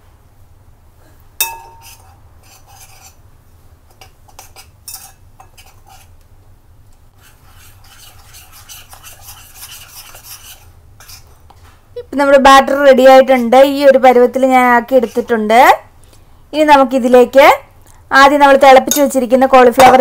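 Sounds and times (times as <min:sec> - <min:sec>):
metal spoon stirring batter in bowl: 0:01.7 - 0:03.2, 0:03.9 - 0:06.2, 0:07.2 - 0:11.4, 0:13.0 - 0:15.6.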